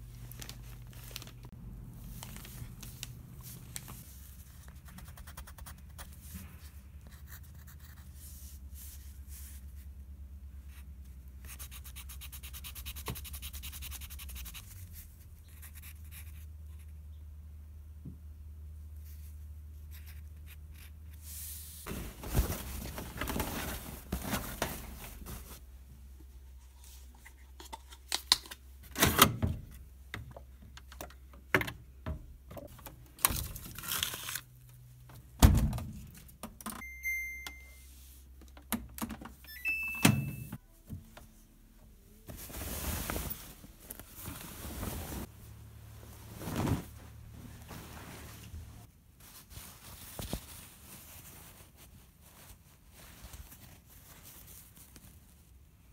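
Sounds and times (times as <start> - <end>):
short high beeps: 36.8 - 37.9.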